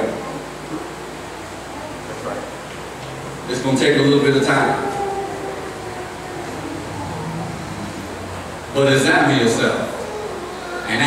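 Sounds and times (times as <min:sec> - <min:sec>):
room and microphone hum: 0:00.0 - 0:11.0.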